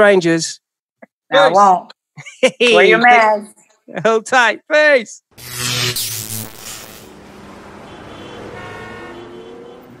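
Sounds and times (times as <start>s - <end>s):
loud noisy whoosh: 5.4s - 7.9s
steady electronic tones: 5.4s - 9.8s.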